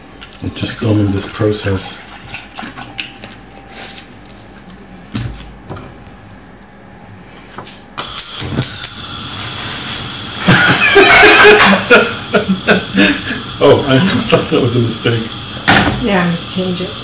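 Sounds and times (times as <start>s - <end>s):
gas burner hissing: 8.0s - 17.0s
voices: 10.6s - 17.0s.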